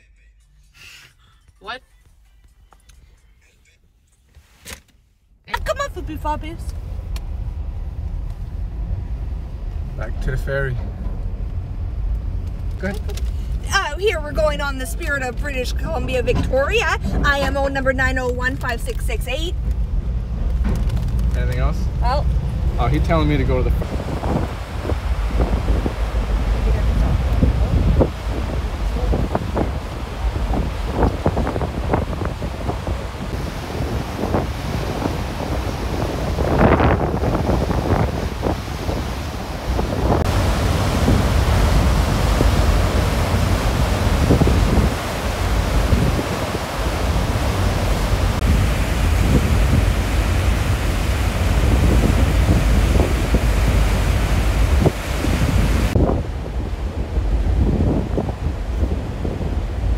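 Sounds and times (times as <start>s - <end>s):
wind buffeting the microphone: 6.2s - 59.9s
sea water rushing: 21.9s - 59.9s.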